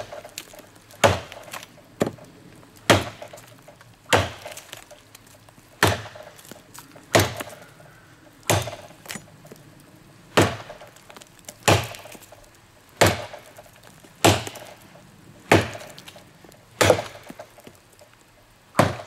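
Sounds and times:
machete chopping tree trunk: 0.0s - 5.0s, 5.8s - 7.7s, 8.4s - 9.6s, 10.3s - 14.8s, 15.5s - 16.2s, 16.8s - 17.8s, 18.8s - 19.0s.

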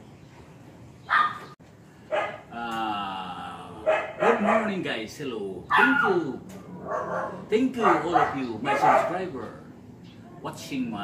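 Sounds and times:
dog barking: 1.1s - 1.5s, 2.1s - 2.5s, 3.8s - 4.8s, 5.7s - 6.2s, 6.8s - 9.6s.

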